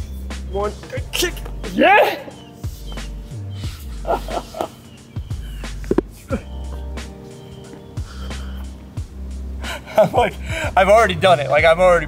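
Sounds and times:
background music with bass line: 0.0s - 12.0s.

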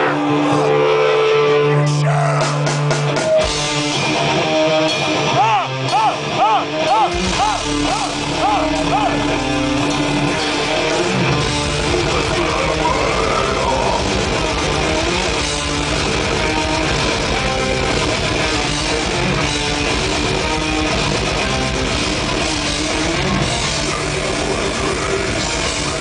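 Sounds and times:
death metal band playing live: 0.0s - 26.0s.

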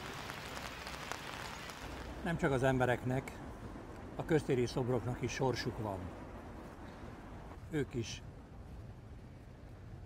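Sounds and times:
faint crackles: 0.0s - 2.4s.

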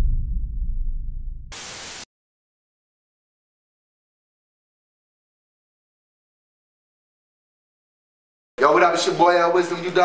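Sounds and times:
deep rumbling boom: 0.0s - 1.5s
static hiss: 1.5s - 2.1s.

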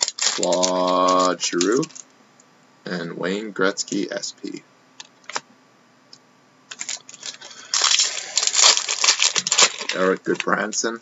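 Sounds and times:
foil wrappers crackling: 0.0s - 2.0s, 6.7s - 10.8s.

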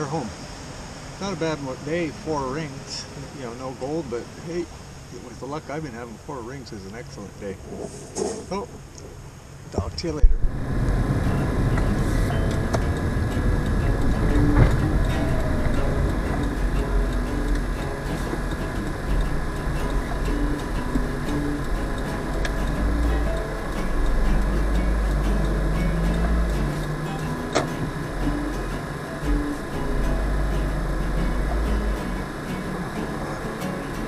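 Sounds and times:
vehicle engine and road noise: 0.0s - 34.0s.

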